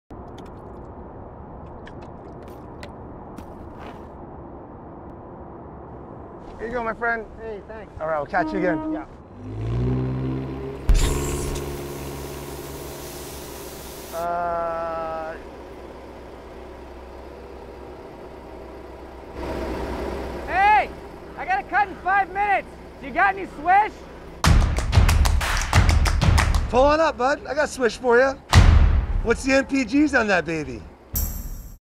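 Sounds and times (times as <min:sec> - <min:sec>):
hiss: 0:11.0 - 0:14.4
street sweeper engine idling: 0:11.2 - 0:24.4.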